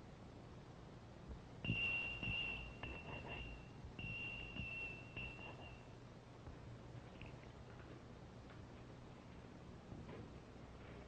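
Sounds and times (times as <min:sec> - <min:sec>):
high steady signal tone: 0:01.6 - 0:06.0.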